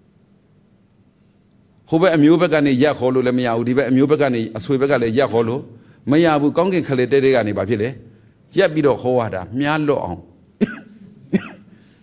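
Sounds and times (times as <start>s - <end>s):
person coughing: 10.6s - 12.0s.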